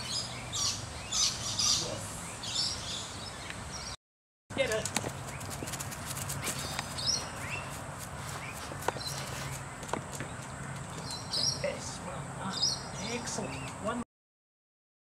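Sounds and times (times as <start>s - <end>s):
birds chirping: 0.0s - 14.0s.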